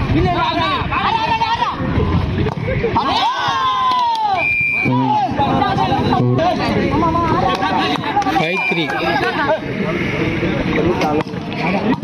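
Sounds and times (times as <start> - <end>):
people shouting: 2.8 - 9.6
referee's whistle blast: 4.3 - 5.1, 8.5 - 9.0.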